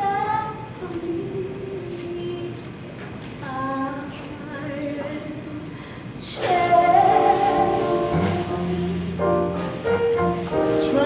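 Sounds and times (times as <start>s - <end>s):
woman singing: 0.0s - 2.7s, 3.4s - 9.4s, 10.6s - 11.0s.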